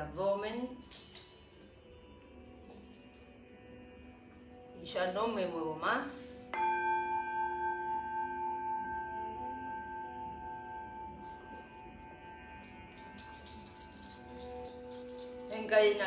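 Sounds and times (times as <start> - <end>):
low steady tone: 6.4 - 14.6
singing bowl ringing: 6.5 - 14.8.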